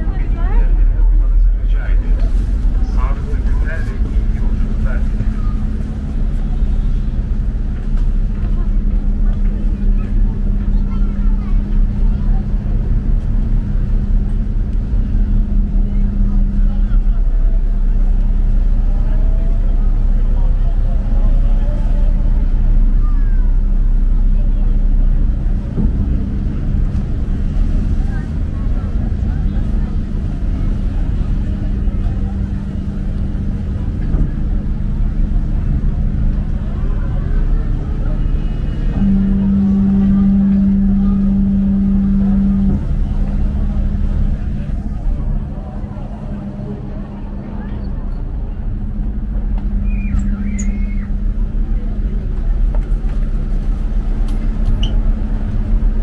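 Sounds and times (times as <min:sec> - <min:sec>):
boat diesel engine drone: 0:00.0 - 0:56.0
passengers' voices: 0:00.0 - 0:56.0.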